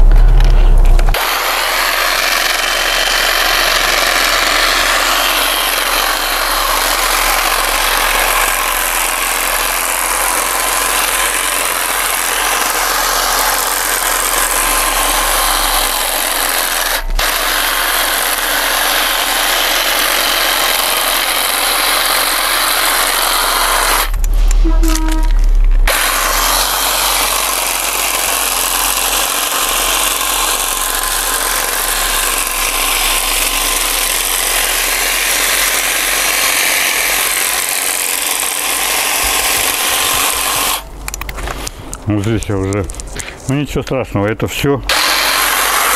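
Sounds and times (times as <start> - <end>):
low rumble: 0.0 - 1.4, 23.1 - 27.7
electric hedge trimmer cutting: 0.0 - 41.8, 44.9 - 45.9.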